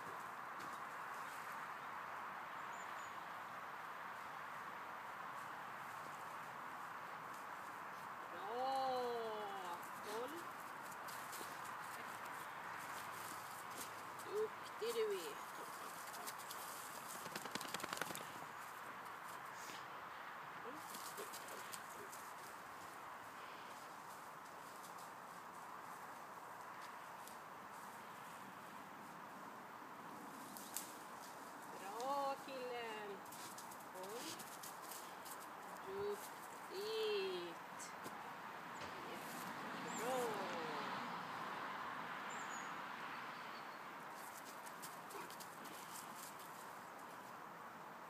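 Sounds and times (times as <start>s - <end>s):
dog running on grass and leaves: 9.5s - 19.5s, 20.8s - 23.0s, 33.1s - 36.6s, 44.1s - 47.3s
dog running over dry leaves: 15.0s - 18.5s.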